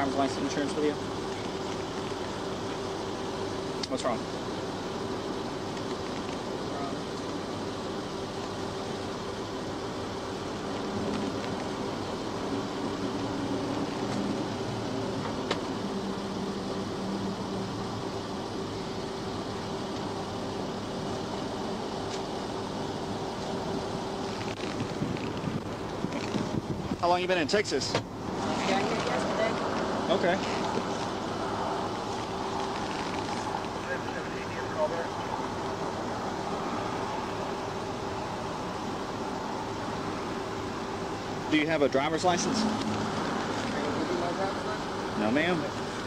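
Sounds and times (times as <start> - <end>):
car approaching: 0.0 - 46.0
roadside hiss and hum: 0.0 - 46.0.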